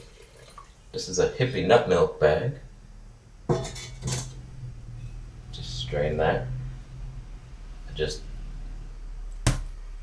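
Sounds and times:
cooking pot clanking on stovetop: 0:03.5 - 0:04.4.

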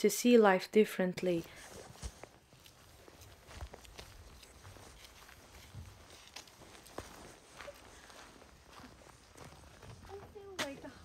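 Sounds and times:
footsteps on gravel: 0:01.6 - 0:11.0.

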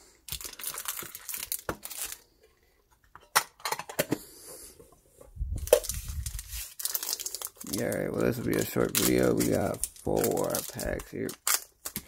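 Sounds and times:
foil wrappers crinkling: 0:00.3 - 0:02.3, 0:05.6 - 0:12.0.

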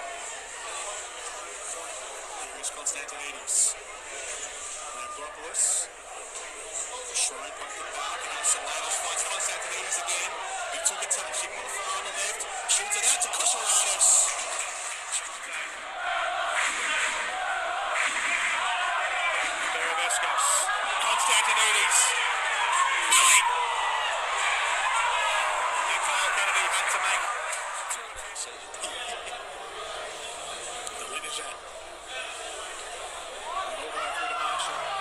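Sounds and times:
crowd noise: 0:00.0 - 0:35.0
indistinct voices: 0:00.0 - 0:35.0.

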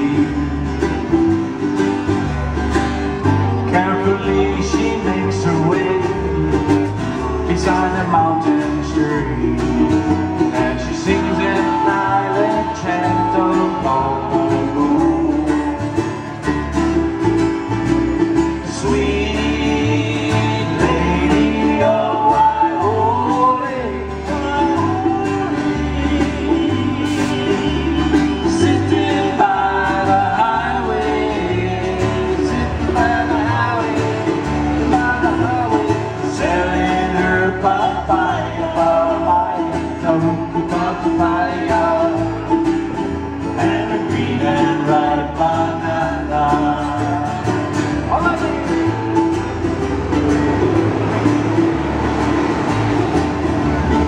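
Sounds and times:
acoustic band with guitar and ukulele: 0:00.0 - 0:54.0
bass line: 0:00.0 - 0:54.0.

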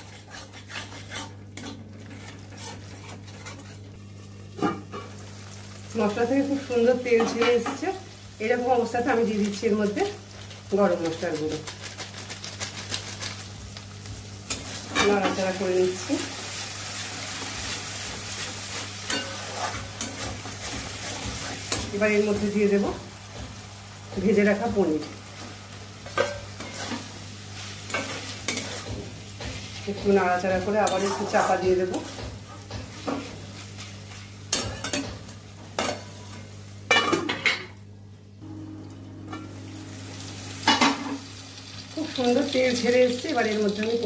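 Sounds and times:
spatula scraping a steel pan: 0:00.0 - 0:03.9, 0:17.6 - 0:21.8, 0:30.8 - 0:32.1
oil sizzling: 0:00.0 - 0:36.9, 0:38.8 - 0:44.0
paste sizzling in oil: 0:14.5 - 0:24.0.

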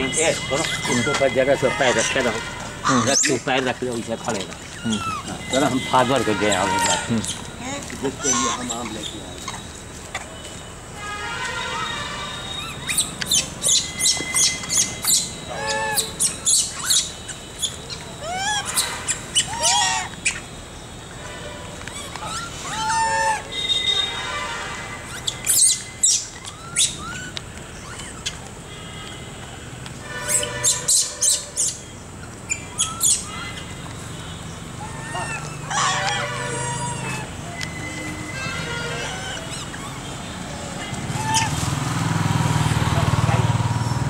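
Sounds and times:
animal squawks: 0:02.8 - 0:03.6, 0:04.6 - 0:07.4, 0:08.0 - 0:09.7, 0:12.4 - 0:20.6, 0:21.9 - 0:24.3, 0:25.1 - 0:28.5, 0:32.5 - 0:33.8, 0:34.7 - 0:41.8
rapid high-pitched chirps: 0:12.5 - 0:20.8.

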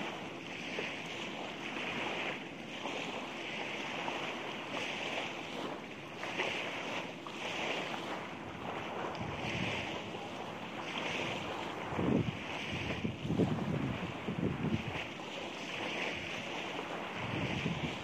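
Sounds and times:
surf: 0:00.0 - 0:18.0
wind blowing across microphone: 0:00.0 - 0:18.0.

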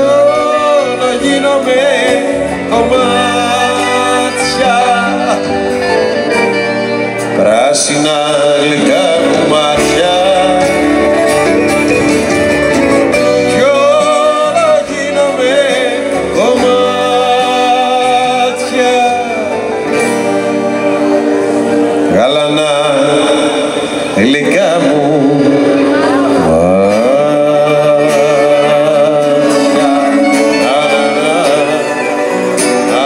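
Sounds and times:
person singing: 0:00.0 - 0:06.6, 0:07.2 - 0:33.0
band accompaniment: 0:00.0 - 0:33.0
strummed acoustic guitar: 0:00.0 - 0:33.0.

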